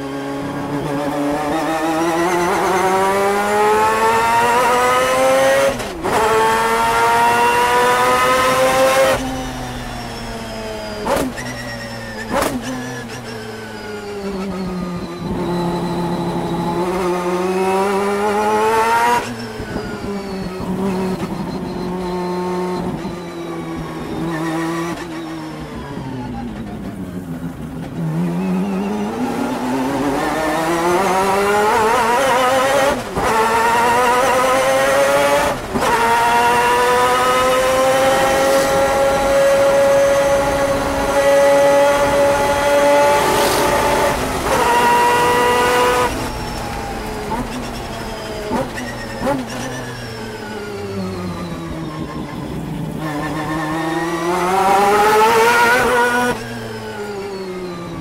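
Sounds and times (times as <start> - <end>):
rotary race car engine: 0.0 - 58.0.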